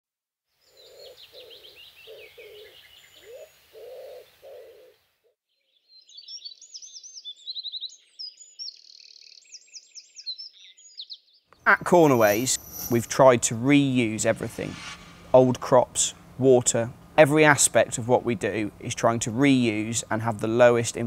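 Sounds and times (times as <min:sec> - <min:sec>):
songbirds singing: 0:00.6 - 0:11.6
faint low rumble: 0:11.7 - 0:21.0.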